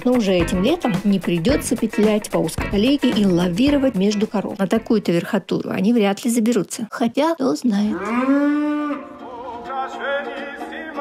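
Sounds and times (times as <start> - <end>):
soft music: 0.0 - 5.3, 8.6 - 11.0
cow mooing: 7.9 - 9.2.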